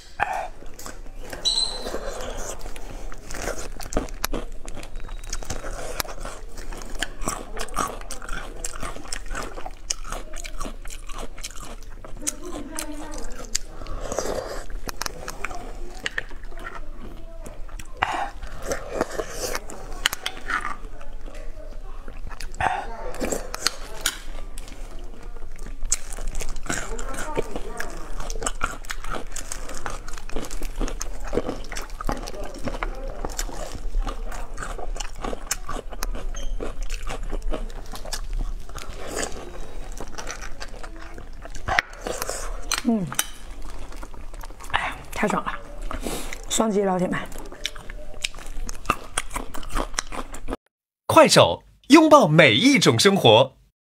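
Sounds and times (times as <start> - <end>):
woman chewing and sucking food: 0.0 - 50.6.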